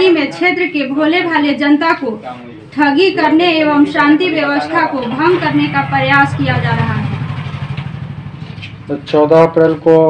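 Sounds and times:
engine running with low throb: 5.0s - 10.0s.

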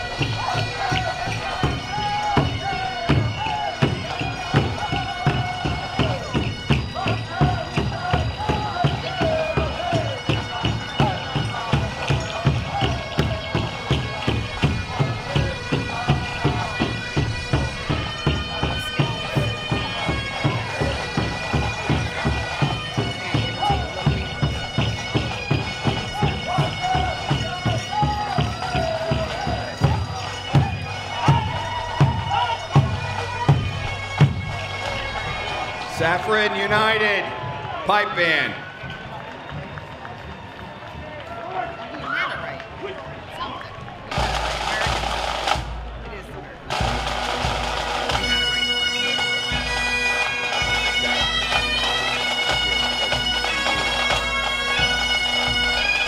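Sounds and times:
drum beating steady pulse: 0.0s - 40.4s, 43.1s - 49.8s.

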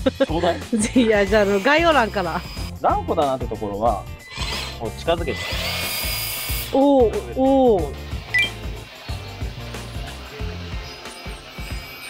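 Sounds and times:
water jet hissing: 4.4s - 6.7s.

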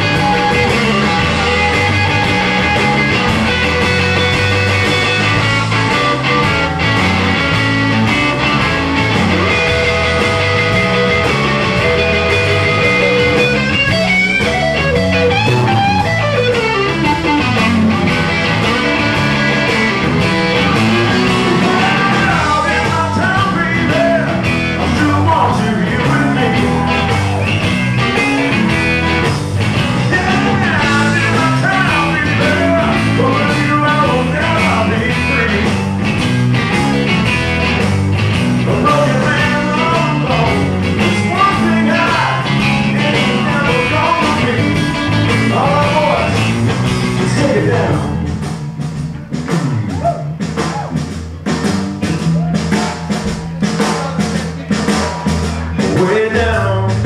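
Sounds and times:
blues-rock band playing: 0.0s - 57.0s.

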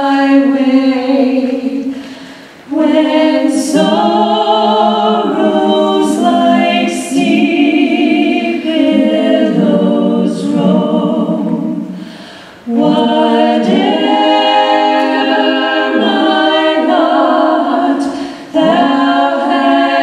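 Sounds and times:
women singing in harmony: 0.0s - 20.0s.

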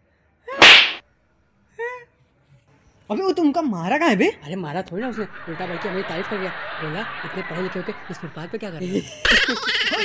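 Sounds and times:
sharp slap to the face: 0.6s - 1.0s.

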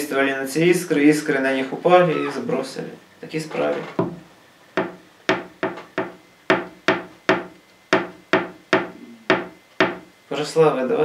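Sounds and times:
sharp knocks on hard surface: 4.8s - 10.1s.

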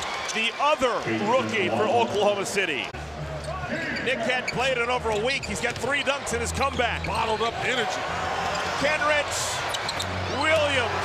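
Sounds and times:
commentator's voice: 0.4s - 2.9s.

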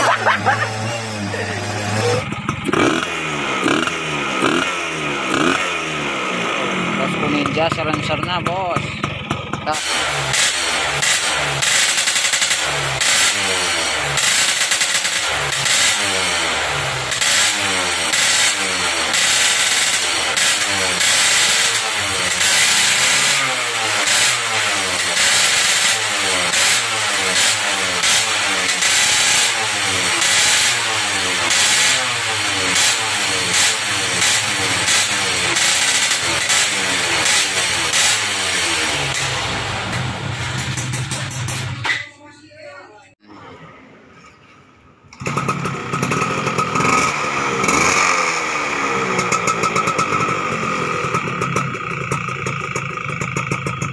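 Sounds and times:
two-stroke motorcycle engine revving: 0.0s - 41.9s, 45.1s - 53.9s.

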